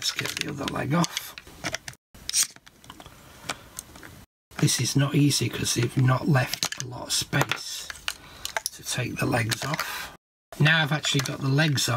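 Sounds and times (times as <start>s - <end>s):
plastic scraping rustle: 0.0s - 3.1s.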